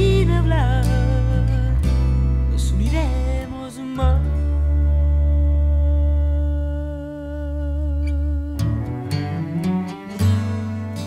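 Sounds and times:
sustained low bass note: 0.0 - 11.0.

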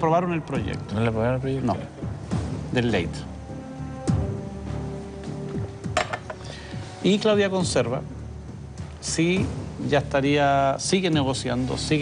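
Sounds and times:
soft background music: 0.0 - 12.0
glass clinking on glass tabletop: 6.0 - 6.4.

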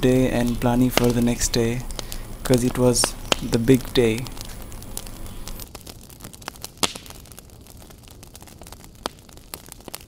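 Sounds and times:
campfire crackling and popping: 0.0 - 10.0.

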